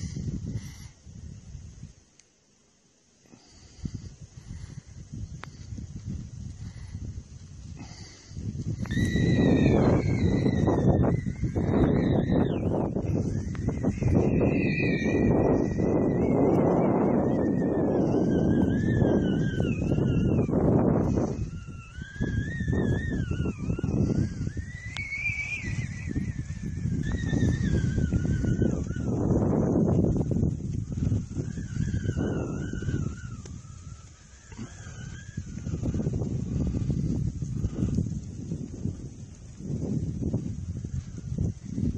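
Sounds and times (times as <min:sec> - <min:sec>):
wavering wind whistle: 0:00.0 - 0:02.0, 0:03.4 - 0:41.9
wind buffeting microphone: 0:00.0 - 0:02.1, 0:03.4 - 0:41.9.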